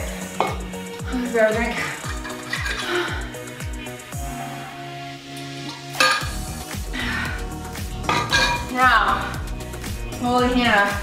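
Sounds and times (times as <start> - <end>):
background music with steady beat: 0.0 - 11.0
metal bottle clinking on tile: 6.0 - 6.4, 8.1 - 8.7.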